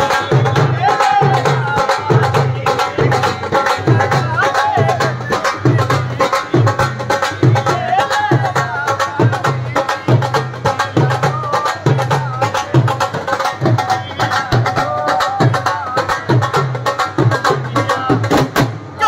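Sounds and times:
drums played with sticks: 0:00.0 - 0:19.0
man singing: 0:00.0 - 0:19.0.

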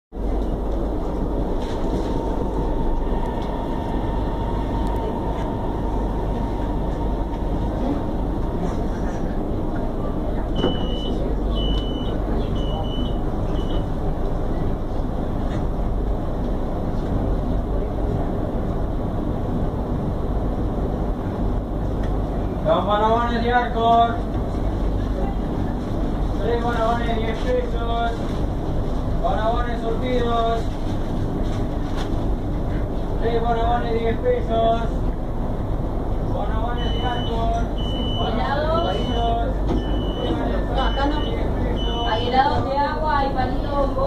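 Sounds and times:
train carriage rumble: 0:00.1 - 0:44.0
faint steady whine: 0:00.2 - 0:44.0
door chime beeps: 0:10.6 - 0:13.8.

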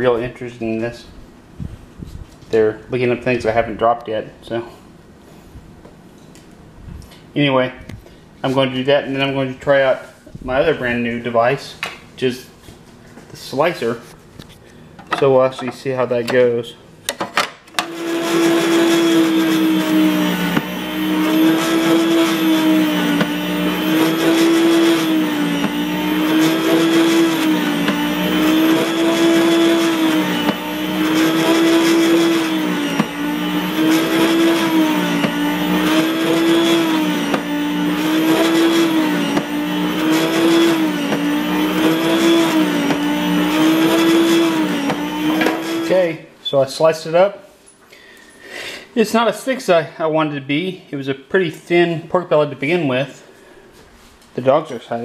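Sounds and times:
meat slicer motor and blade humming: 0:17.8 - 0:46.1.

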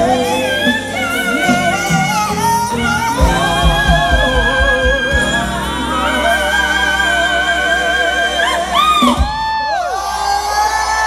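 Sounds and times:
low drum beat: 0:00.0 - 0:07.7
person singing: 0:00.0 - 0:11.0.

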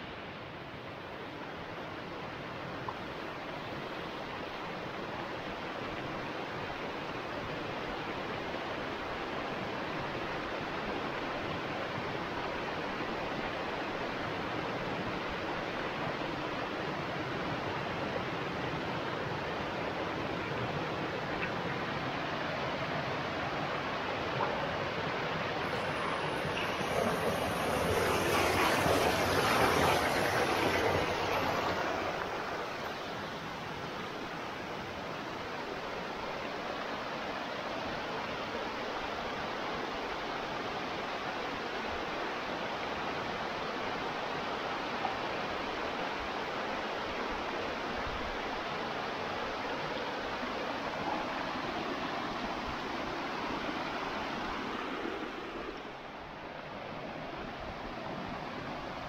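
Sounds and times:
stream rushing over rocks: 0:00.0 - 0:59.0.

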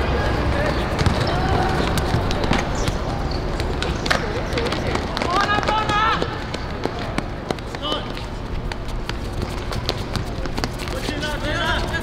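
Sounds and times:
players running and kicking ball: 0:00.0 - 0:12.0.

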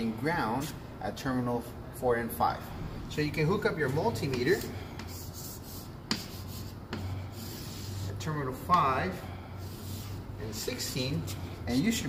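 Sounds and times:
chalk scraping on a chalkboard: 0:04.2 - 0:08.9, 0:09.6 - 0:11.4
chalk tapping on a board: 0:04.2 - 0:08.9.

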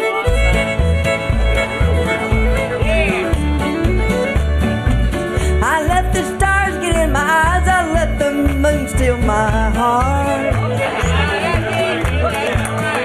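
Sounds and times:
country band playing: 0:00.0 - 0:13.0
fiddle melody: 0:00.0 - 0:13.0
bass beat: 0:00.3 - 0:12.2.

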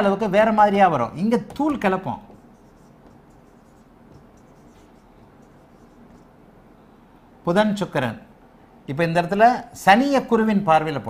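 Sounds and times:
marker writing on whiteboard: 0:01.3 - 0:06.4.

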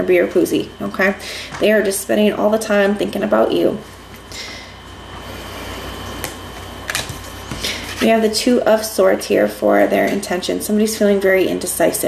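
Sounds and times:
low steady hum: 0:00.0 - 0:12.0
cards rustling on table: 0:06.2 - 0:08.2.

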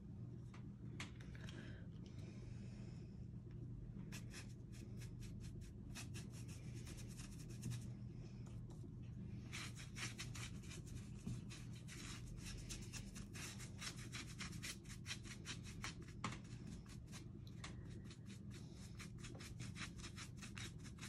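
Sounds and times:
low steady hum: 0:00.0 - 0:21.0
paintbrush scrubbing: 0:04.1 - 0:07.9, 0:09.4 - 0:21.0.

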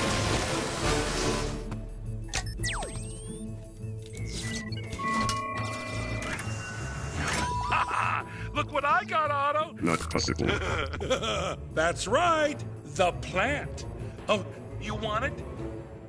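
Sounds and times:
background music: 0:00.0 - 0:16.0
electronic beeps and tones: 0:02.3 - 0:03.5, 0:04.1 - 0:07.6.

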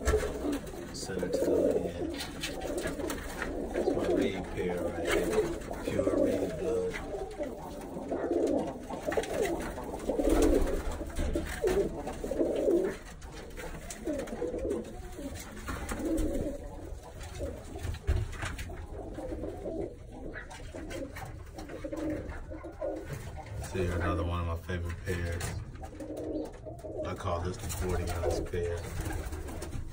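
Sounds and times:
pigeons cooing: 0:00.0 - 0:29.9.

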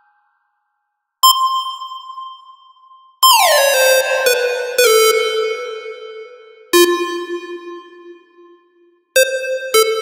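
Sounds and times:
bright synth lead notes: 0:03.3 - 0:05.8.

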